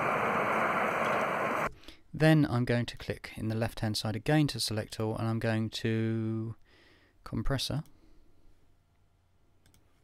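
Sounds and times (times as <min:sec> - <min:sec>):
wind hiss: 0:00.0 - 0:01.7.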